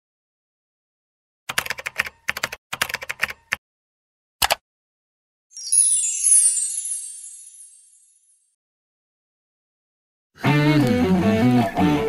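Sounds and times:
keyboard typing: 1.5 - 3.6, 4.4 - 4.6.

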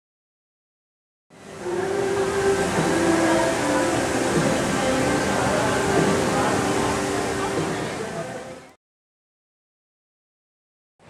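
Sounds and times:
faint crowd voices: 1.4 - 8.8
fountain water rushing: 1.4 - 8.8.

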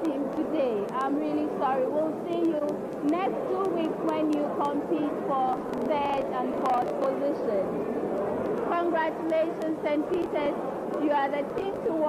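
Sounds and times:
woman speaking: 0.0 - 7.7, 8.7 - 12.0.

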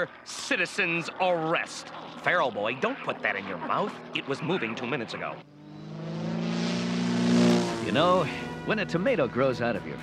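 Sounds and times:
propeller plane engine droning: 0.0 - 10.0.

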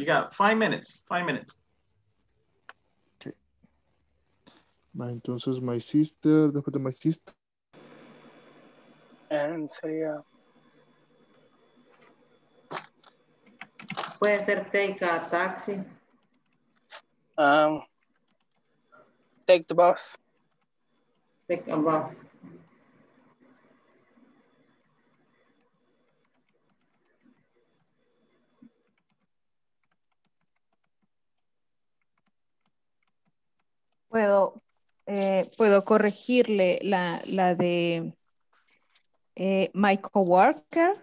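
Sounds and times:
faint background hum: 0.0 - 29.2
computer keyboard typing: 12.7 - 22.0, 22.6 - 35.7.

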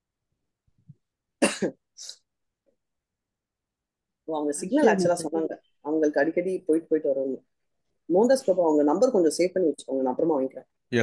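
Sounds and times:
person coughing: 1.4 - 1.8.

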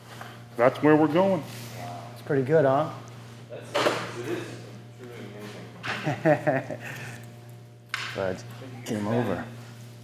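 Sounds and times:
steady low hum: 0.0 - 10.0
men speaking indistinctly: 8.1 - 9.6.

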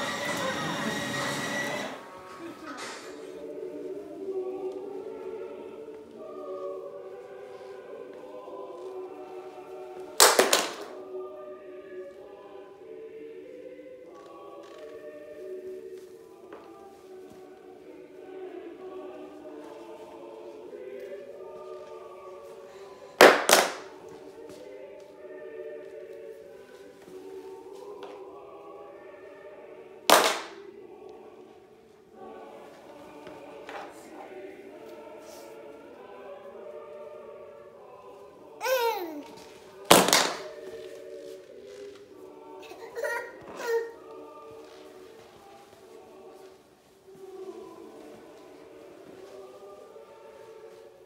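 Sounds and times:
sharp noisy bursts: 0.0 - 2.1
choral singing: 0.0 - 51.0.

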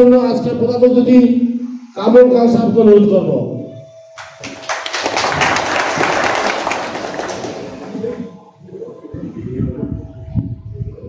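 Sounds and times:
audience applauding: 4.2 - 8.3.

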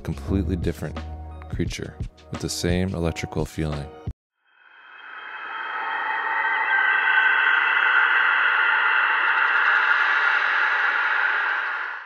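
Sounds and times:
faint high held tones: 4.5 - 12.0.

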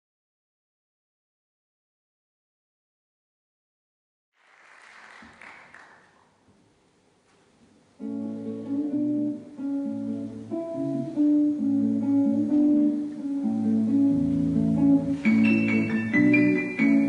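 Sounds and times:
guitar plucking notes and chords: 8.0 - 17.0
piano: 8.0 - 17.0.

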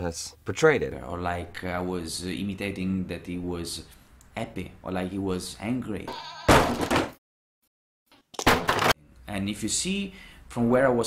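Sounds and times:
animal bleating: 6.1 - 6.6.

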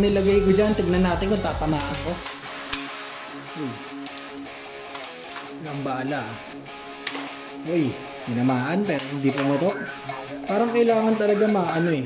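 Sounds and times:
guitar music: 0.0 - 12.0.

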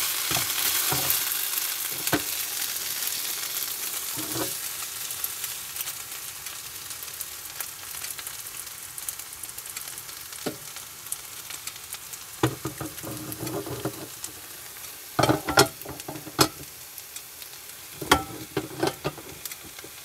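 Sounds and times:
rice sizzling in a frying pan: 0.0 - 20.0
wooden spatula knocking a pan: 12.4 - 14.1, 15.2 - 16.7, 18.0 - 20.0.

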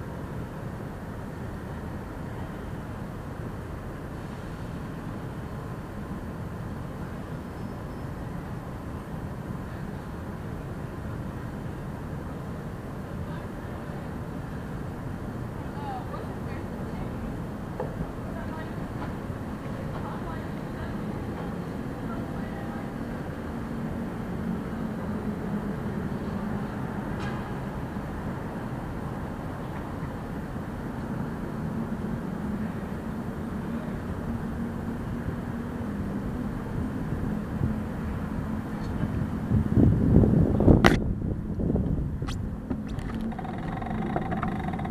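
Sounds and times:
low rumble of street traffic: 0.0 - 44.9
low steady hum: 40.9 - 44.9.

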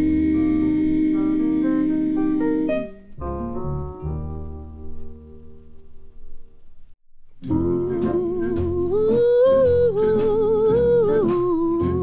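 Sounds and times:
wordless vocal melody: 0.0 - 3.4, 7.4 - 12.0
slow steady beat: 0.0 - 12.0.

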